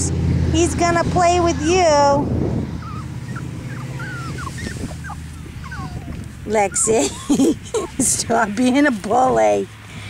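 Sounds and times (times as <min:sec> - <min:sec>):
puppies whimpering: 0:01.3 - 0:08.9.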